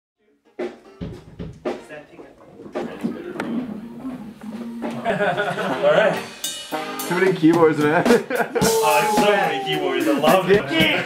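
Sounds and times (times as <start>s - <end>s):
drum kit hits: 0.6s - 1.9s, 2.8s - 11.0s.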